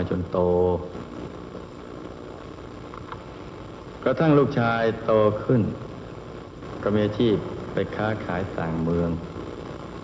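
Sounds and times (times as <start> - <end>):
light hiss: 0.0 - 10.0
low room hum: 0.0 - 10.0.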